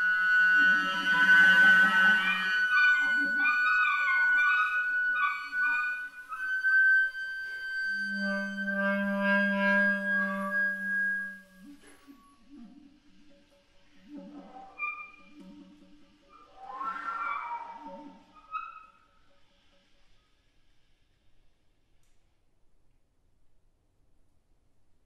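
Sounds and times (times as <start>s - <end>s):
flute and clarinet duo playing: 0.0s - 11.5s.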